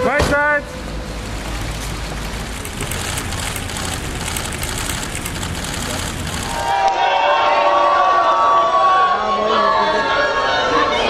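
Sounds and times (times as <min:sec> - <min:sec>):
indistinct crowd voices: 0:01.5 - 0:11.0.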